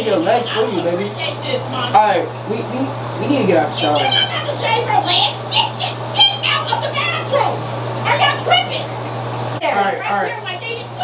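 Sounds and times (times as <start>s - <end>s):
running water hissing: 0.0s - 11.0s
steady low hum: 0.0s - 11.0s
voices: 0.0s - 11.0s.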